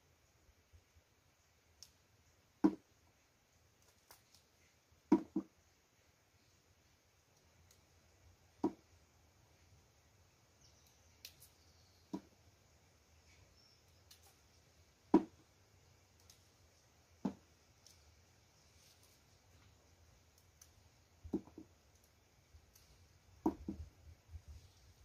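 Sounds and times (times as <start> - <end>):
plant stalks snapping: 3.8 - 4.5, 10.8 - 11.6, 13.9 - 14.4, 16.1 - 16.4, 20.3 - 20.8.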